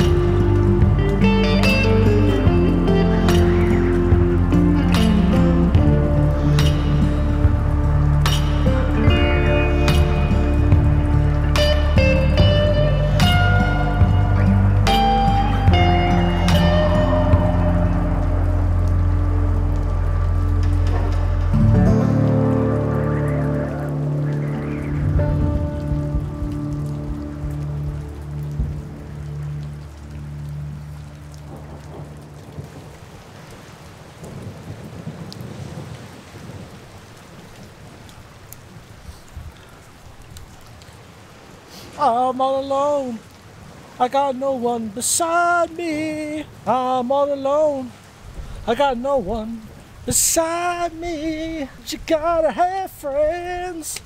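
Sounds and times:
soundtrack music with low tones: 0.0 - 33.0
steady rain: 0.0 - 54.0.

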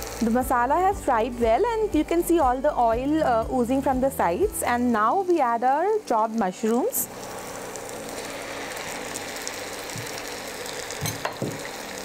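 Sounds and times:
food sizzling in oil: 0.0 - 2.4, 3.1 - 12.0.

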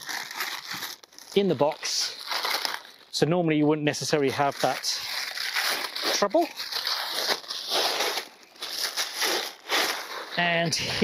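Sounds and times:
paper and cardboard crinkling: 0.0 - 11.0.

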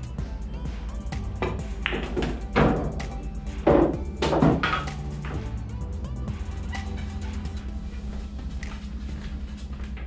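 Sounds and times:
background music: 0.0 - 9.7
cue tip striking ball: 1.4 - 5.5
pool balls clacking: 1.4 - 5.6.

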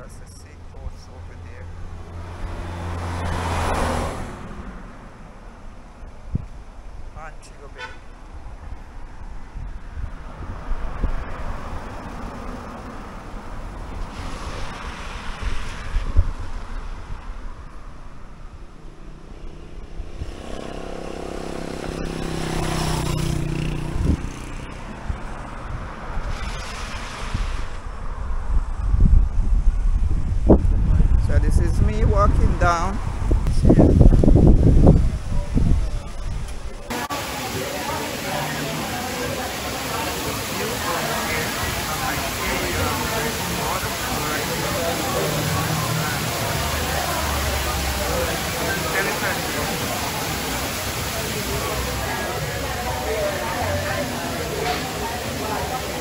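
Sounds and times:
cars passing: 0.0 - 56.0
wind rumble on microphone: 6.1 - 7.1, 8.2 - 20.9, 23.2 - 36.9.

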